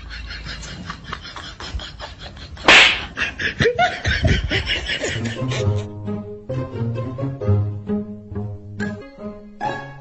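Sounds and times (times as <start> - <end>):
person laughing: 0.0 - 5.9.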